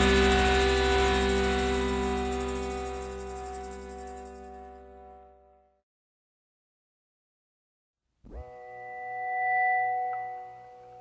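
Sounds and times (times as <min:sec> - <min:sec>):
sustained ringing tone: 0:00.0 - 0:04.9, 0:08.4 - 0:11.0.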